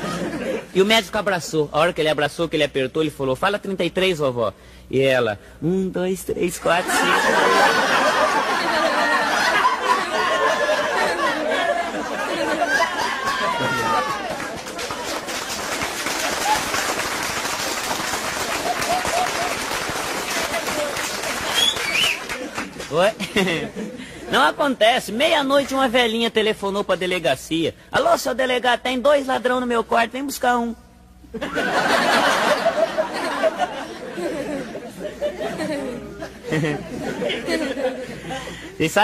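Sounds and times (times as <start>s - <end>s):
audience laughing: 0.0s - 0.8s, 6.6s - 17.0s, 18.3s - 24.6s, 31.3s - 38.8s
audience applauding: 12.4s - 23.1s.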